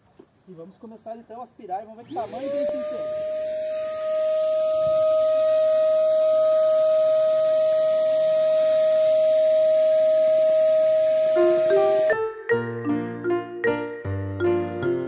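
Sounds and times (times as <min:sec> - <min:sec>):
vacuum motor whining: 0:02.0 - 0:12.2
light piano music: 0:11.4 - 0:15.0.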